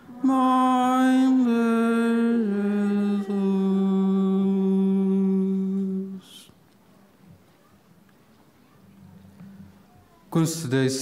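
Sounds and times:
voice humming sung note: 0:00.0 - 0:06.4.

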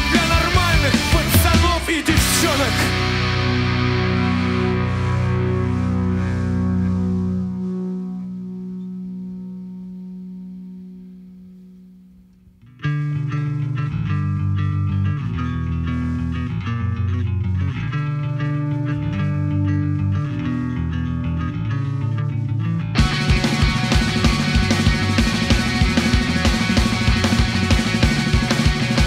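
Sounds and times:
rock band playing bass riff: 0:00.0 - 0:09.9, 0:12.7 - 0:29.0
distorted electric guitar chord: 0:00.0 - 0:12.1, 0:23.0 - 0:29.0.

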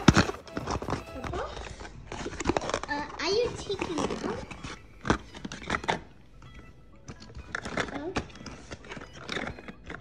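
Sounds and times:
packaging clicks and knocks: 0:00.0 - 0:10.0.

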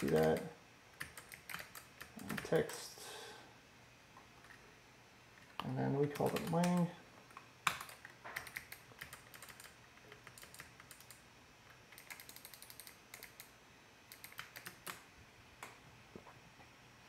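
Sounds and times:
computer keyboard typing: 0:00.0 - 0:02.8, 0:05.4 - 0:13.5, 0:14.1 - 0:15.0.

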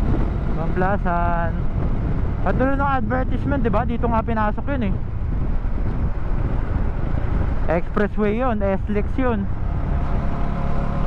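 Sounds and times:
motorcycle engine rumble: 0:00.0 - 0:11.0
wind rush on microphone: 0:00.0 - 0:11.0.

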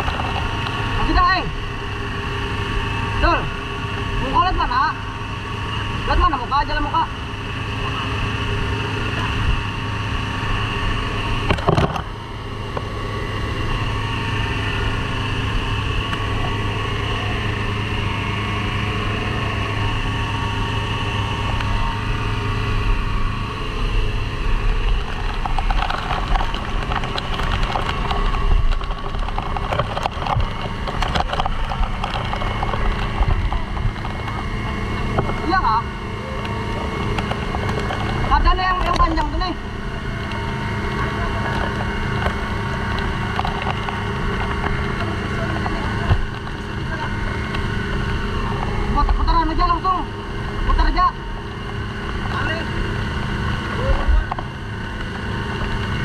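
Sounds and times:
small engine running: 0:00.0 - 0:56.0.

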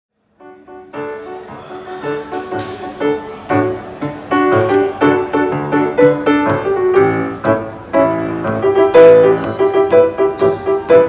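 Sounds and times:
solo grand piano: 0:00.4 - 0:11.0.

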